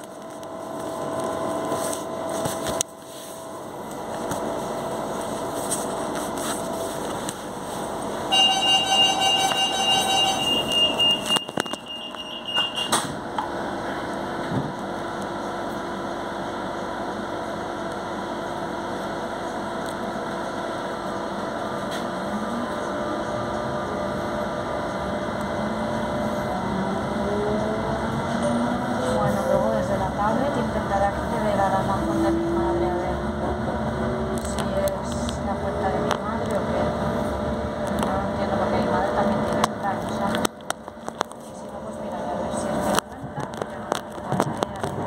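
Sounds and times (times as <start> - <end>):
train rumble: 0.0 - 45.0
door-warning tone: 8.3 - 13.2.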